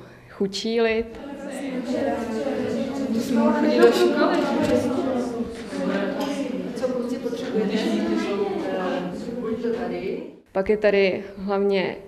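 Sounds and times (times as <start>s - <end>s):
women talking: 0.5s - 12.0s.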